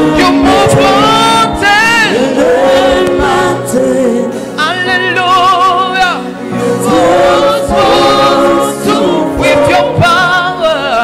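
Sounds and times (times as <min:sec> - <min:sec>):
choir singing gospel: 0:00.0 - 0:11.0.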